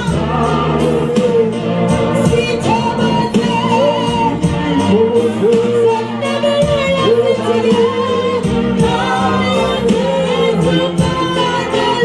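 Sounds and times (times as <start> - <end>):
backing voices singing: 0.0 - 12.0
woman singing into microphone: 2.2 - 12.0.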